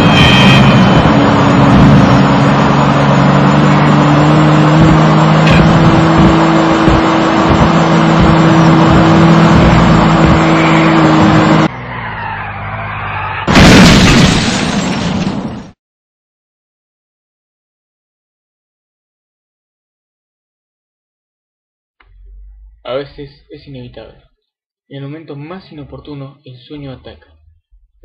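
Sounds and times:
car engine running hard: 0.0 - 11.8
tyres screeching: 3.4 - 13.8
loud car crash: 8.9 - 15.8.

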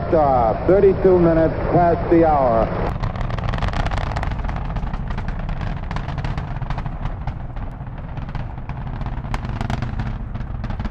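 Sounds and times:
rocket engines rumbling and crackling: 0.0 - 10.9.

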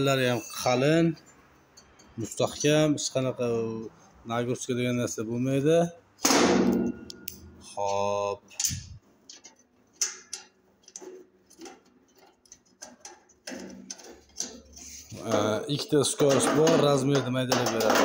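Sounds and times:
sharp knock on metal: 6.3 - 7.2
sheet metal scrape: 8.5 - 15.6.

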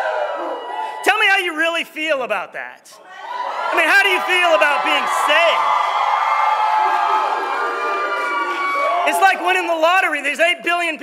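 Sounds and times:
congregation cheering and calling out: 0.0 - 1.5, 3.0 - 10.8.

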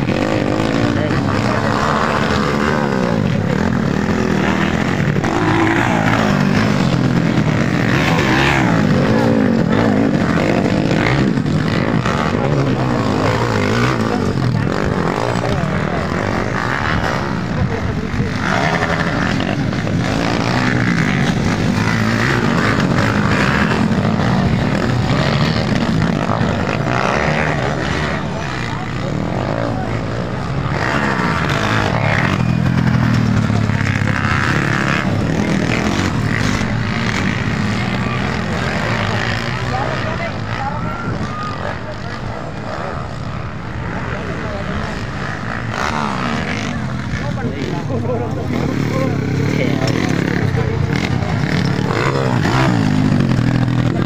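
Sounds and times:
motorcycle engines revving: 0.0 - 54.0
spectators' voices: 0.0 - 54.0.

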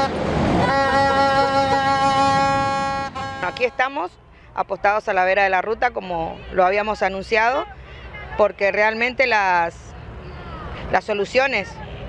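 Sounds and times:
passing vehicle rush: 0.0 - 12.0.

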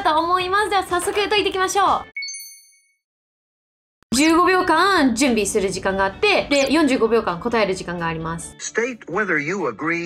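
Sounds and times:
bright ding: 2.2 - 3.0.

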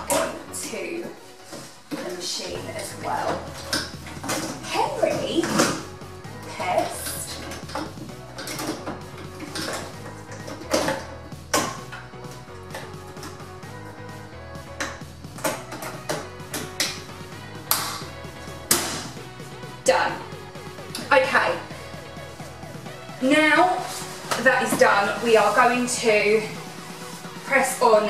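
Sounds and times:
background music: 0.0 - 28.0.

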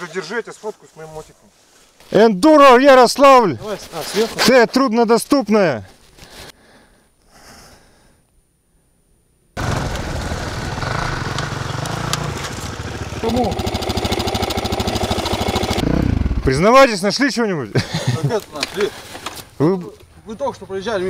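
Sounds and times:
dirt bike engine running: 9.6 - 16.7.

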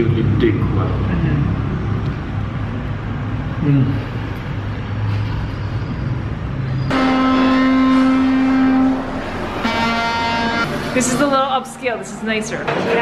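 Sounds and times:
street traffic rumbling: 0.0 - 13.0
vehicle horn honks: 6.9 - 10.7.

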